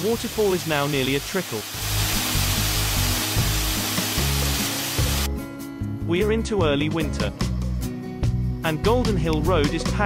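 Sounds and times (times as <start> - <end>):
waterfall rushing over rock: 0.0 - 5.3
background music with low notes: 1.8 - 10.0.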